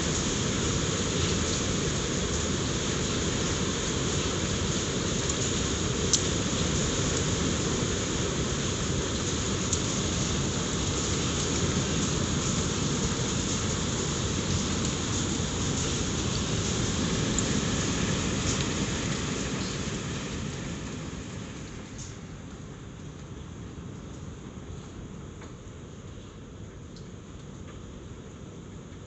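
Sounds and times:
heavy hail on gravel: 0:00.0 - 0:21.2.

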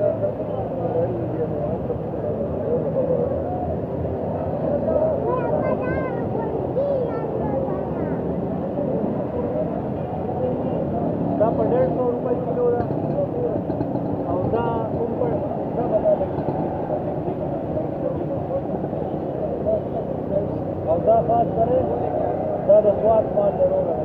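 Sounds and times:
people talking: 0:00.0 - 0:24.0
traffic rumble: 0:00.0 - 0:24.0.

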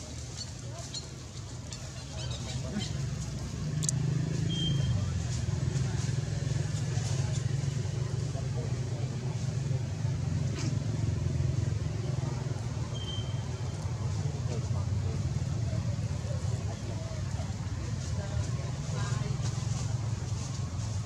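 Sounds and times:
vehicle engine humming: 0:00.0 - 0:21.0.

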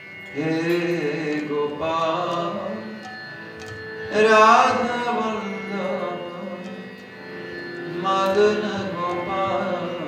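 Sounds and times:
sustained harmonium: 0:00.0 - 0:10.0
person singing devotional chant: 0:08.0 - 0:10.0.

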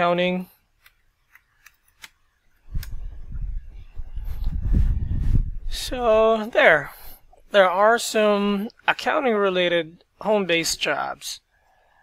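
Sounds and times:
low rumble: 0:02.8 - 0:06.3.

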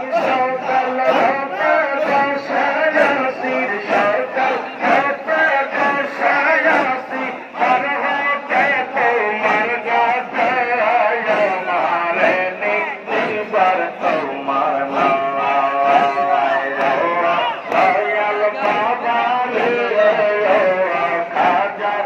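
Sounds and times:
men singing devotional chant: 0:00.0 - 0:22.0.

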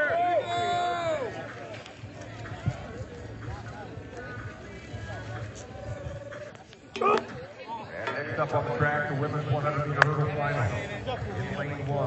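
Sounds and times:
distant crowd chatter: 0:00.0 - 0:12.0.

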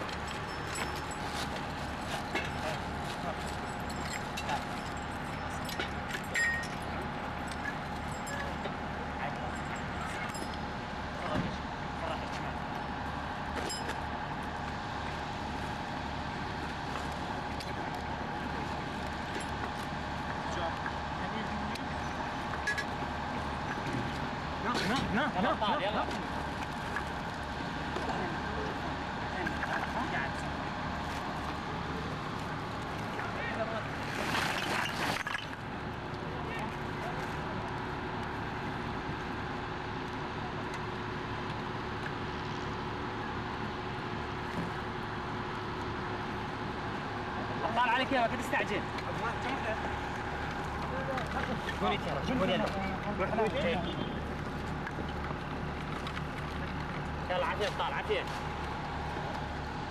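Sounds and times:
street traffic: 0:00.0 - 0:59.9.

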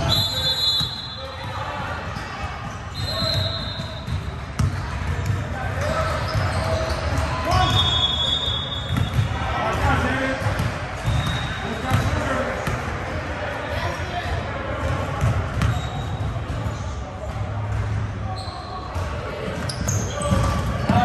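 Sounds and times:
chatter of players and spectators: 0:00.0 - 0:21.0.

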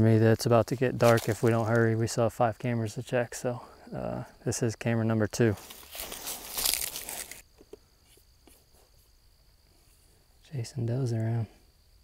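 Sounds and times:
rustle: 0:00.0 - 0:02.0, 0:05.4 - 0:12.0
crickets chirring: 0:00.0 - 0:12.0.

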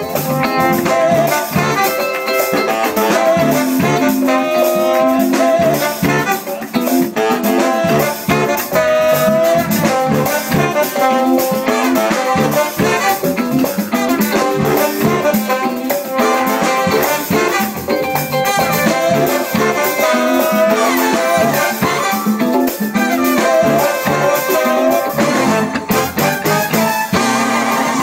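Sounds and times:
drums: 0:00.0 - 0:28.0
electric guitar: 0:00.0 - 0:28.0
funk band playing: 0:00.0 - 0:28.0
horn section playing: 0:00.0 - 0:28.0.

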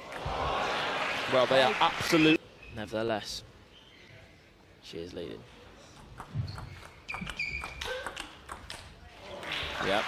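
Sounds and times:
crowd applause: 0:00.0 - 0:02.3, 0:09.3 - 0:10.0
ping pong ball clicking: 0:06.2 - 0:08.9
shoes squeaking on floor: 0:06.3 - 0:08.1.

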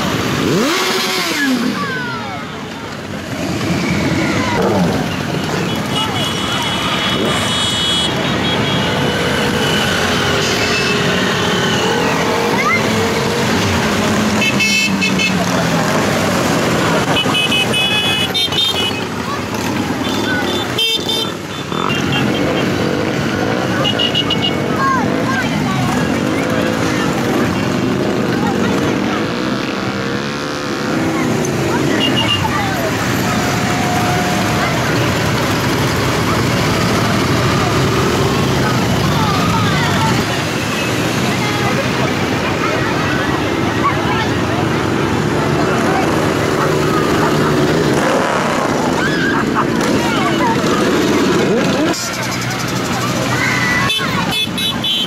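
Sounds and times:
motorcycle engines passing: 0:00.0 - 0:55.0
horn toots: 0:04.6 - 0:12.6, 0:14.1 - 0:16.0, 0:53.7 - 0:55.0.

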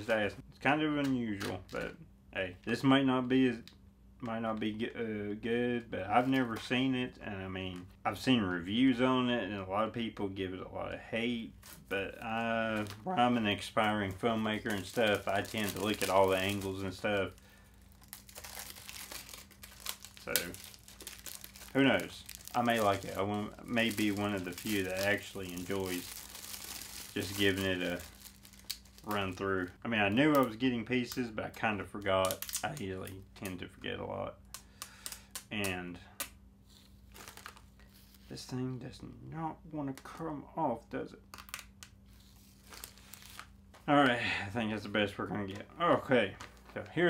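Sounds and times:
faint low hum: 0:00.0 - 0:47.0
plastic packaging crinkling: 0:11.5 - 0:33.2, 0:36.8 - 0:38.2, 0:41.4 - 0:43.9.

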